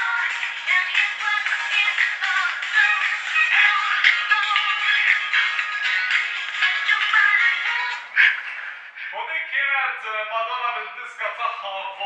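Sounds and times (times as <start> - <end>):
tinny music with synthetic singing: 0.0 - 9.2.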